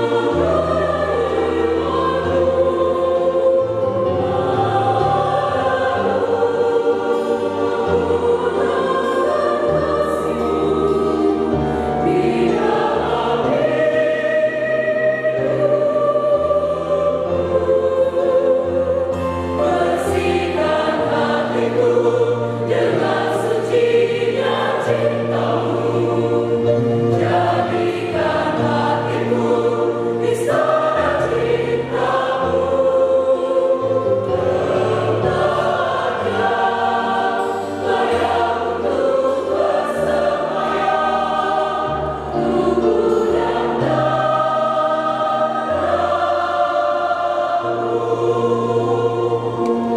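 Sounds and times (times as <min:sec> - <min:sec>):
mixed choir singing a hymn: 0:00.0 - 0:49.9.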